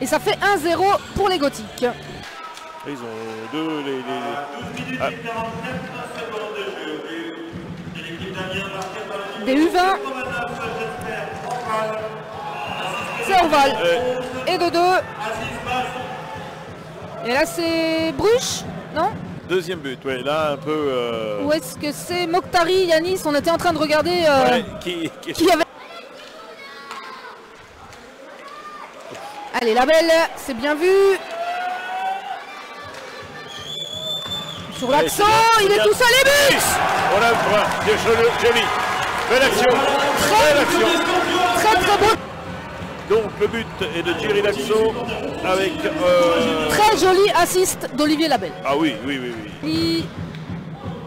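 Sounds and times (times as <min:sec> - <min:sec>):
faint crowd noise: 0:00.0 - 0:51.0
men talking indistinctly: 0:02.8 - 0:16.7, 0:19.4 - 0:21.6, 0:24.0 - 0:25.6, 0:34.8 - 0:42.2, 0:43.0 - 0:47.3, 0:48.2 - 0:49.7
ice hockey game background: 0:25.4 - 0:51.0.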